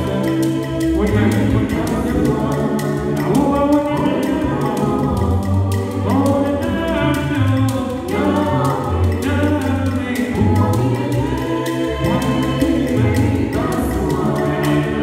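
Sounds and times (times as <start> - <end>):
deep sung bass line: 0.0 - 15.0
vocal group singing in harmony: 0.0 - 15.0.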